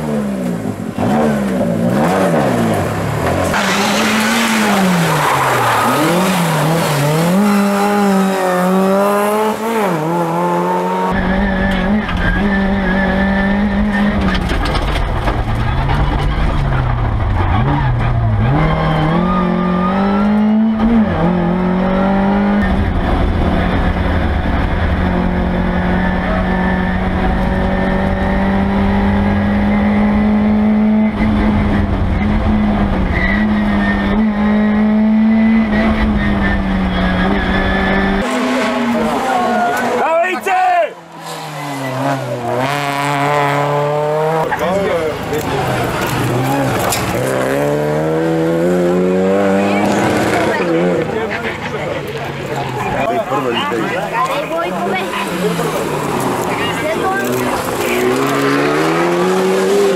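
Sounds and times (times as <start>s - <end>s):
rally car engine at high revs: 0.0s - 40.1s, 41.0s - 59.9s
road and cabin rumble: 11.2s - 19.6s.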